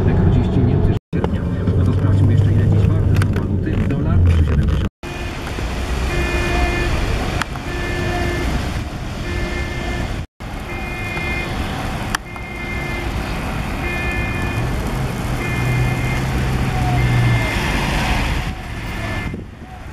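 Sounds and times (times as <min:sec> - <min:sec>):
street traffic: 0:00.0 - 0:19.9
diesel engines idling: 0:05.1 - 0:17.6.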